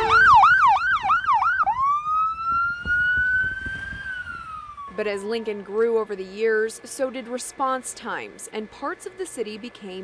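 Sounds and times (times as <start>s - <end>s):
ambulance siren: 0.0s - 6.0s.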